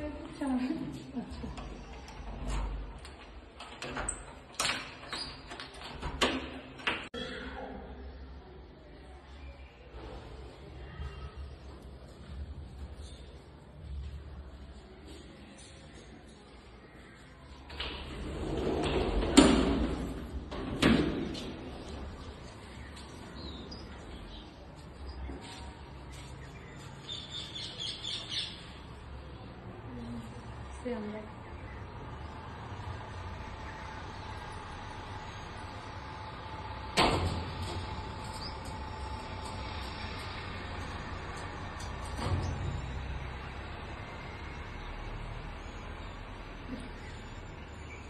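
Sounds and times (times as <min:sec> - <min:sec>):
sliding door rumbling on track: 0:17.7 - 0:22.6, 0:31.6 - 0:47.8.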